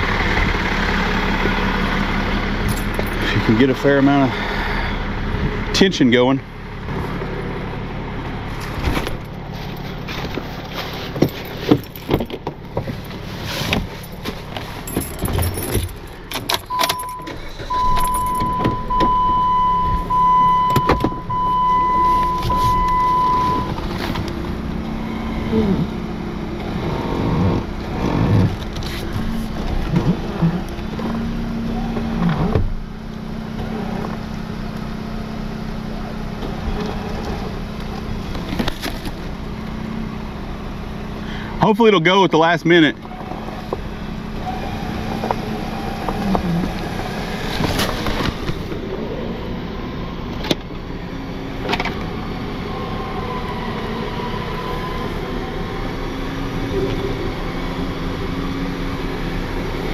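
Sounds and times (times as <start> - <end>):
engine and winch humming: 0.0 - 59.9.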